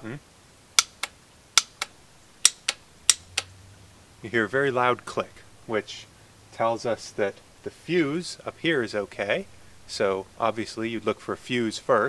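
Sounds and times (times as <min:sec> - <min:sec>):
relay solenoids clicking: 0:00.7 - 0:03.6.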